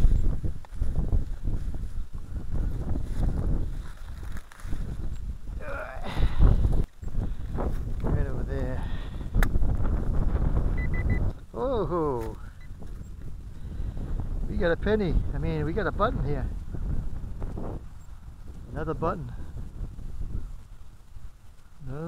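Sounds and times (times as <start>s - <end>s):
constant low rumble: 0.0s - 22.0s.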